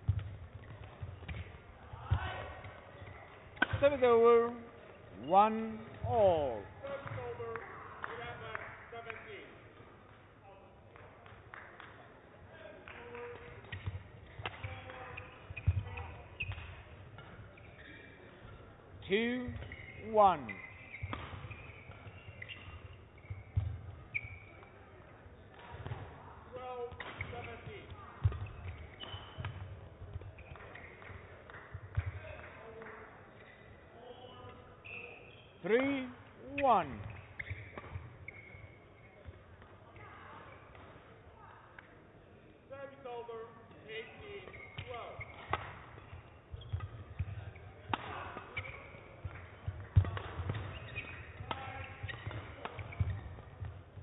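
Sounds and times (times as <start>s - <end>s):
racket hitting shuttlecock: 0.0s - 2.9s, 3.6s - 3.8s, 20.6s - 24.8s, 26.9s - 31.2s, 36.8s - 38.2s, 44.4s - 54.0s
shoes squeaking on court: 0.0s - 7.3s, 13.2s - 26.1s, 26.8s - 31.3s, 33.3s - 41.0s, 43.7s - 54.0s.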